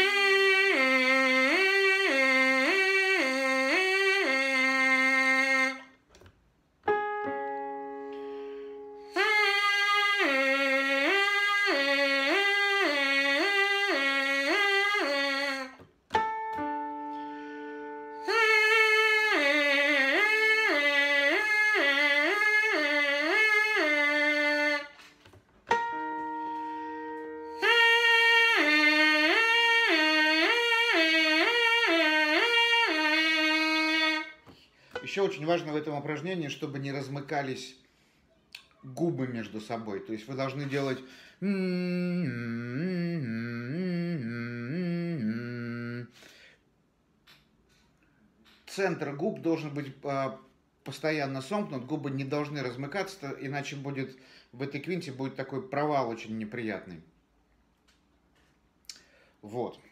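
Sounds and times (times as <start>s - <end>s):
trumpet mouthpiece buzzing: 0.0s - 6.0s, 9.0s - 25.1s, 25.7s - 35.6s, 41.4s - 46.2s
held keyboard notes: 6.8s - 9.3s, 16.1s - 18.5s, 25.7s - 30.5s.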